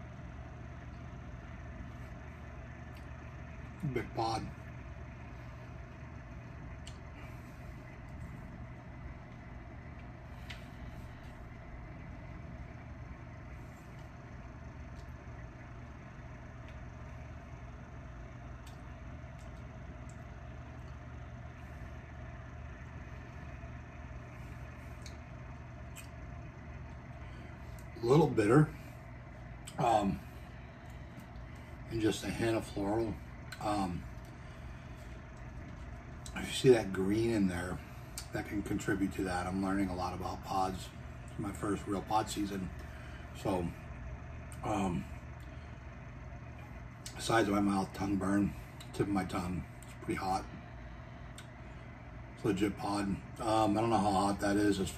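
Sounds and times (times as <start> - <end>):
low background hum: 0.0 - 54.9
faint clicks: 6.8 - 7.1, 18.6 - 21.1.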